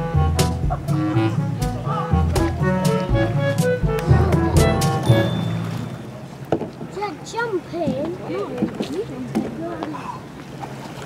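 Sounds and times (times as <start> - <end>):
background music: 0.0 - 6.2
water splashing from paddle stroke: 0.4 - 11.0.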